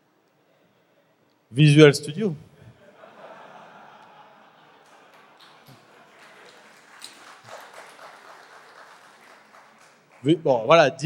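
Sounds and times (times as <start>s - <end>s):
murmured laughter: 2.6s - 7.0s
scattered hand claps: 4.8s - 10.4s.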